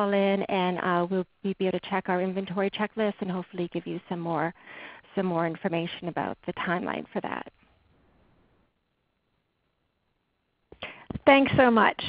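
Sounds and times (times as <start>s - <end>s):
person speaking: 0.0s - 7.6s
faint room hiss: 0.0s - 12.0s.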